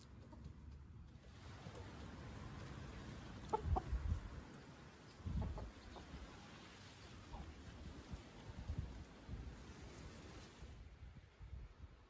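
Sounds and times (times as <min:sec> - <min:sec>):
chickens clucking: 0:00.0 - 0:00.7, 0:01.6 - 0:06.5.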